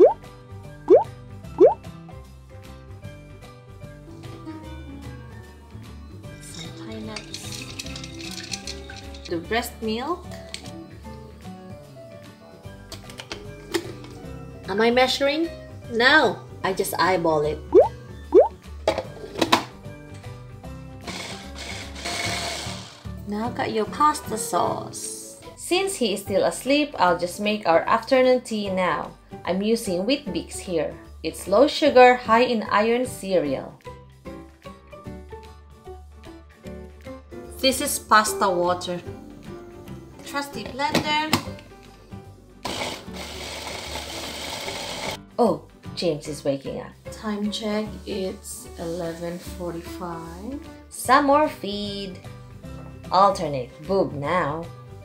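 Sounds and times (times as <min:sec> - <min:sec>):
background music: 0:00.0 - 0:55.0
stick blender whirring: 0:21.0 - 0:23.2, 0:42.6 - 0:45.2.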